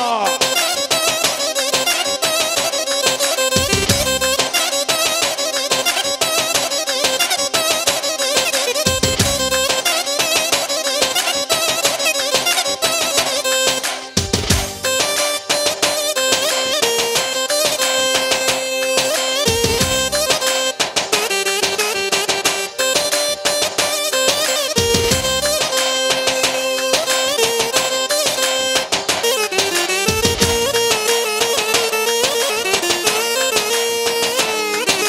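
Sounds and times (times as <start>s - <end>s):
live band dance music: 0.0s - 35.0s
reedy lead melody: 0.0s - 35.0s
steady drum beat: 3.6s - 4.4s, 8.9s - 9.8s, 14.2s - 15.0s, 19.5s - 20.3s, 24.8s - 25.7s, 29.1s - 31.0s.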